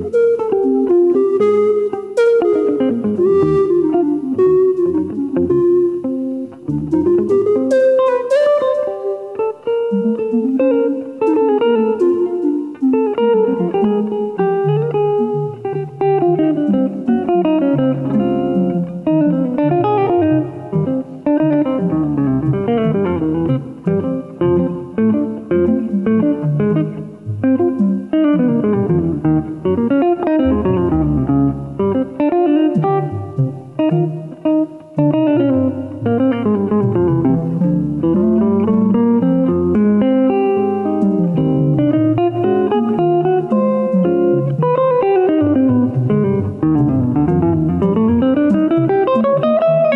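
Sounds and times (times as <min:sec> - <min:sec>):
reed wind instrument melody: 0:00.0 - 0:24.8
electric guitar chords and runs: 0:00.0 - 0:49.9.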